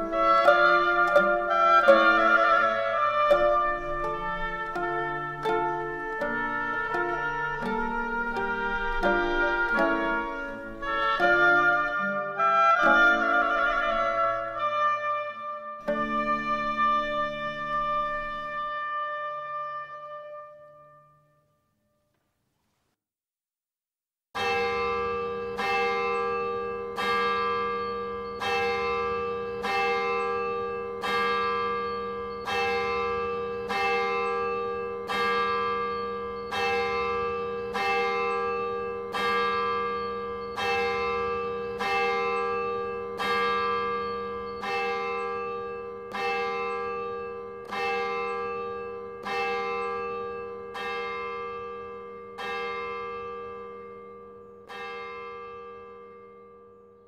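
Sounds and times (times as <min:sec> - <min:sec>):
church bell tolling: 0:00.0 - 0:21.7, 0:24.4 - 0:57.0.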